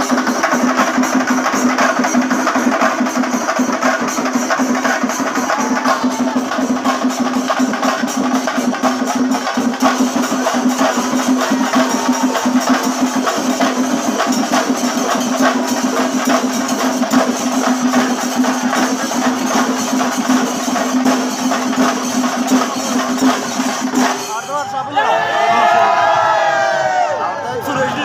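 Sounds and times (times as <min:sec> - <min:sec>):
cymbals: 0:00.0 - 0:25.2
drums beaten in fast rhythm: 0:00.0 - 0:26.8.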